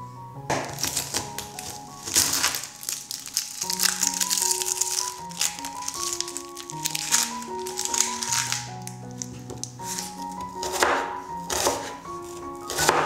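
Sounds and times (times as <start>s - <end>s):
slow instrumental background music: 0.0s - 13.0s
onion being handled: 0.5s - 13.0s
knife cutting onion on wooden board: 9.3s - 13.0s.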